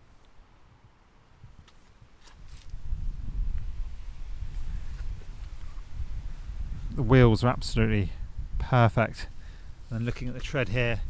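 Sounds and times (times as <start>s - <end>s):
low rumbling on microphone: 2.7s - 11.0s.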